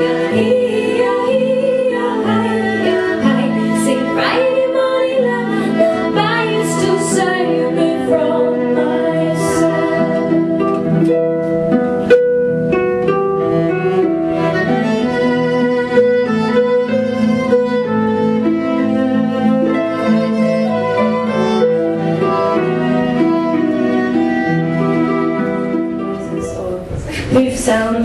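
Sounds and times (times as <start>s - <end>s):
harp plucking notes: 0.0s - 26.8s
bowed strings: 0.0s - 28.0s.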